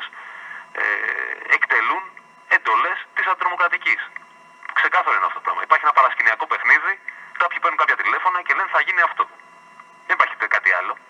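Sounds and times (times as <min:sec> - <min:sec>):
man talking over telephone line: 0:00.0 - 0:09.4, 0:10.0 - 0:11.0.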